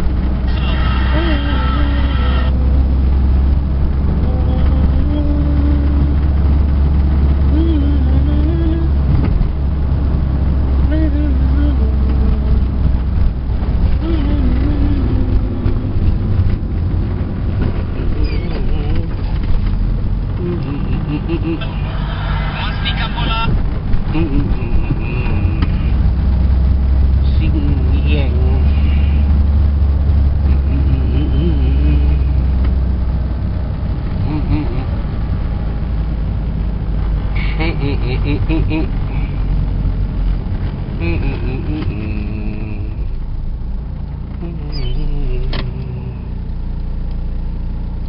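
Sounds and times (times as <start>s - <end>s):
car engine rumble: 0.0s - 48.0s
road noise: 0.0s - 48.0s
muffled voices talking: 20.4s - 25.9s.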